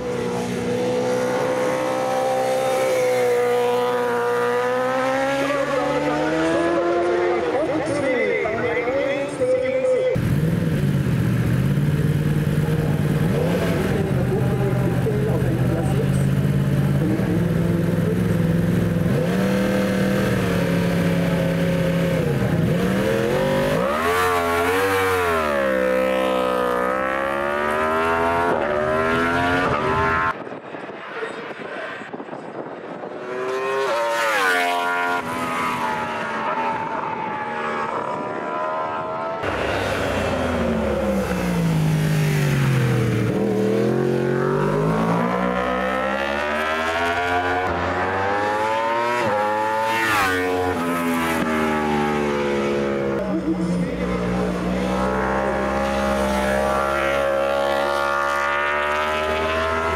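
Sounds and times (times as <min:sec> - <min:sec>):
motorcycle passing close: 0:00.0 - 0:08.2, 0:10.2 - 0:59.9
racing motorcycle engines: 0:00.0 - 0:59.9.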